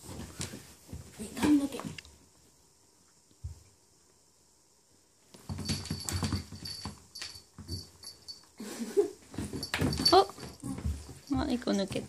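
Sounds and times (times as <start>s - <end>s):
dog paws scrambling on wooden floor: 0.0s - 2.0s, 5.3s - 8.4s, 9.2s - 12.0s.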